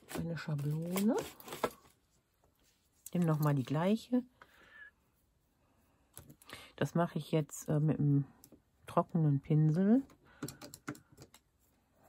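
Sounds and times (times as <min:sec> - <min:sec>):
person speaking: 0:03.1 - 0:04.3.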